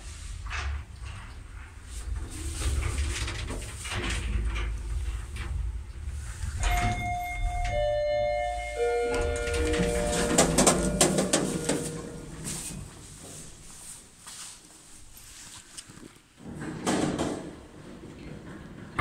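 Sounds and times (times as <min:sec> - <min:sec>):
lift cabin rumble: 0:00.0 - 0:14.2
lift doors clacking: 0:00.5 - 0:13.6
descending arrival chime: 0:06.6 - 0:12.5.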